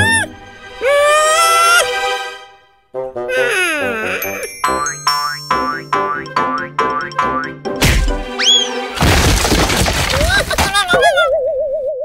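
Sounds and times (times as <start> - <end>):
sneaky plucked cartoon tune: 3.3 - 7.8
rising and falling whistle: 8.4 - 8.8.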